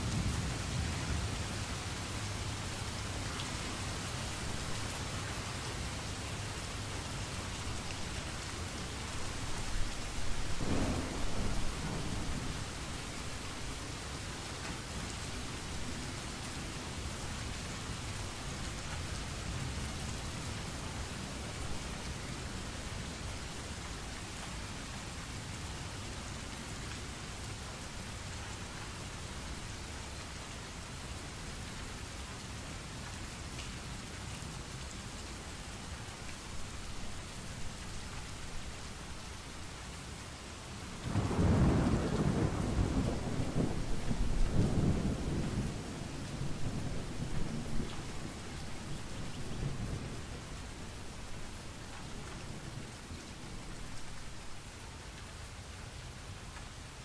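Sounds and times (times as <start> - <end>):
steady rain: 0.0 - 57.0.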